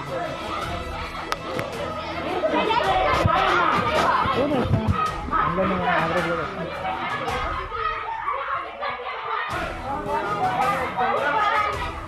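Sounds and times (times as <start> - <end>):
people arguing: 0.0 - 12.0.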